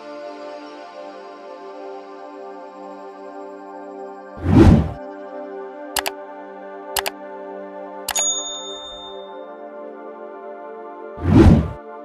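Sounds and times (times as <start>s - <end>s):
background music: 0.0s - 12.0s
click: 6.0s - 6.2s
bell-like ding: 8.1s - 9.6s.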